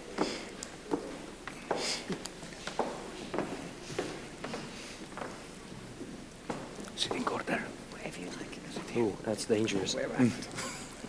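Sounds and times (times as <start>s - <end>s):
people talking quietly: 6.8s - 11.0s.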